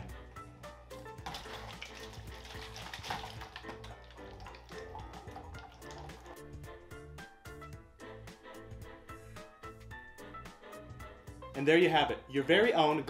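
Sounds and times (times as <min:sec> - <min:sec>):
background music: 0:00.0 - 0:13.0
water draining and swirling: 0:01.2 - 0:06.4.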